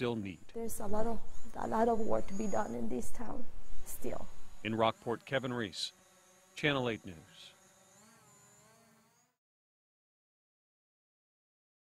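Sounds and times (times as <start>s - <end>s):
faint wavering tones: 0.3s - 4.7s.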